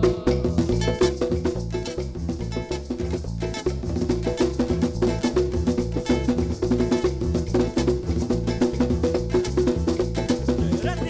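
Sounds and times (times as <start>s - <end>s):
acoustic guitar: 0.0s - 11.0s
electric bass: 0.0s - 11.0s
hand drum: 0.0s - 11.0s
live band music: 0.0s - 11.0s
maracas: 0.0s - 11.0s.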